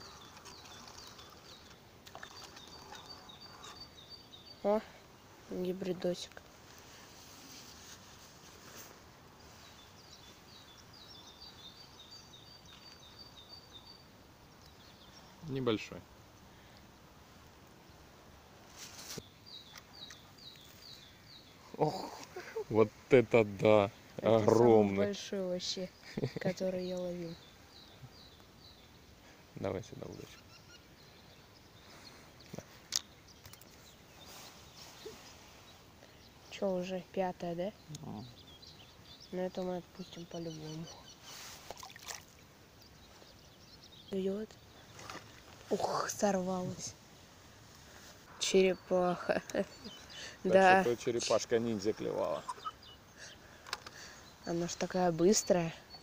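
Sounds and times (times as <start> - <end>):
bird chirping: 0.0 - 6.4, 9.4 - 16.8, 19.0 - 47.0, 47.7 - 56.0
background hiss: 0.0 - 56.0.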